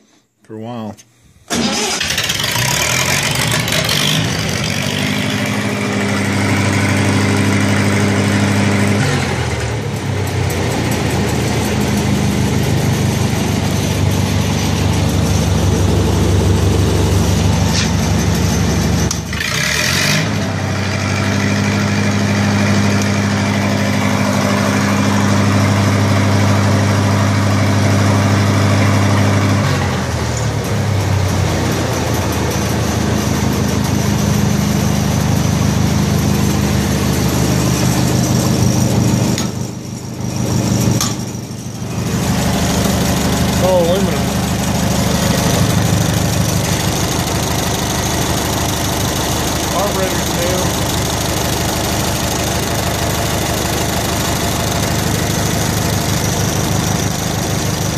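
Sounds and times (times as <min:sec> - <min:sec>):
welder engine running: 0:01.5 - 0:57.9.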